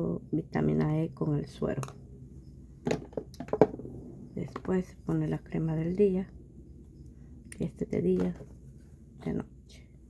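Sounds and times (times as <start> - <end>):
plastic bottles clicking and knocking: 2.8 - 3.8.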